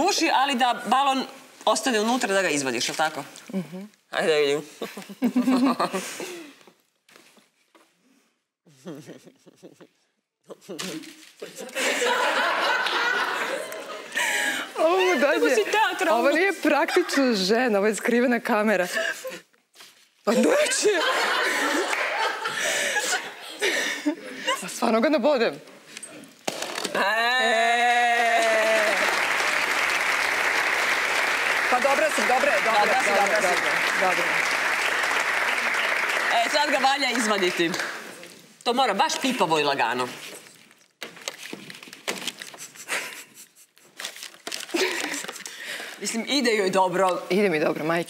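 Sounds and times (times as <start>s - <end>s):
women laughing: 4.8s - 6.4s, 11.4s - 15.8s, 16.7s - 17.5s, 20.3s - 24.7s, 42.6s - 44.0s
rubber balloon crinkling: 26.2s - 27.0s, 40.1s - 45.6s.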